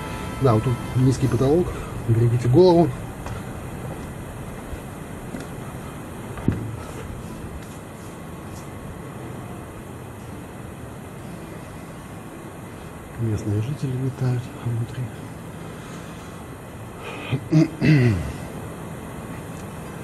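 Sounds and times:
low rumbling background noise: 0.0 - 20.0.

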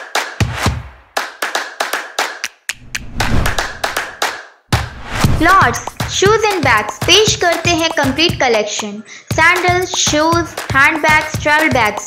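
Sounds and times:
hand-clap beat: 0.0 - 12.0
loud hit: 2.9 - 6.0.

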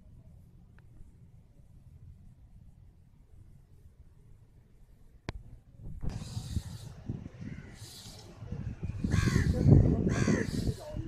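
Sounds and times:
crow cawing: 9.1 - 10.8.

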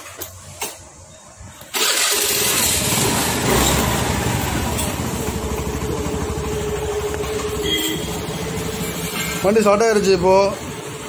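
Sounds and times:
scooter engine idling: 1.8 - 11.0.

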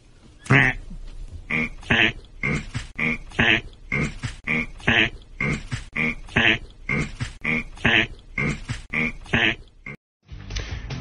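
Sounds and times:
person laughing: 1.5 - 10.0.

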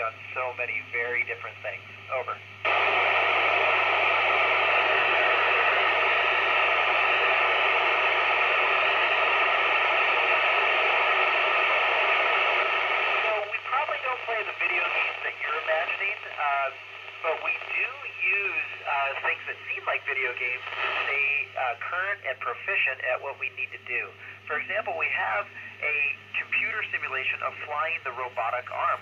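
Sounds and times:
radio receiver hiss: 0.0 - 29.0
voice over the radio: 4.5 - 29.0.

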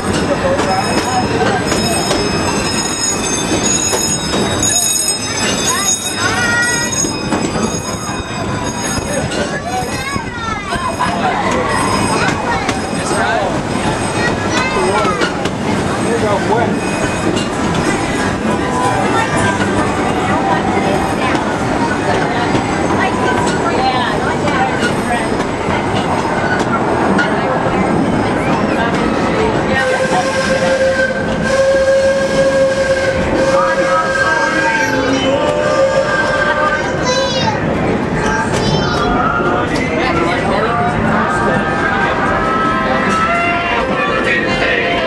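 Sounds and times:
train cars rumbling and rattling: 0.0 - 45.0.

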